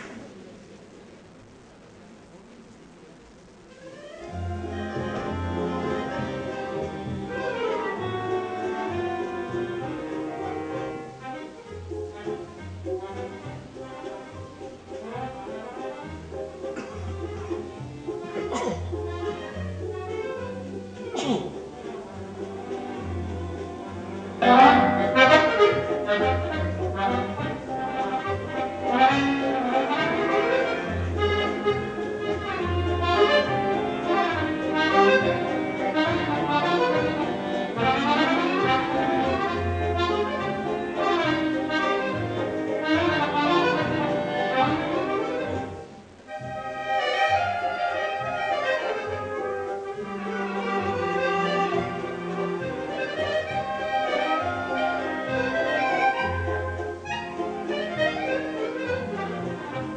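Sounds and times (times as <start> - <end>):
accordion solo: 3.8 - 59.9
orchestra playing: 4.0 - 59.9.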